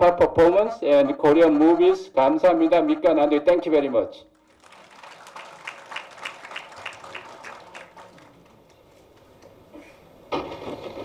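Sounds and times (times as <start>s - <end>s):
light applause: 4.4s - 9.8s.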